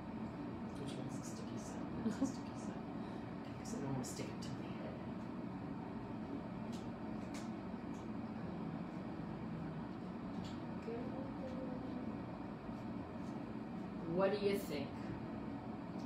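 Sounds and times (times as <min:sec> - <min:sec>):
low room hum: 0:00.0 - 0:16.0.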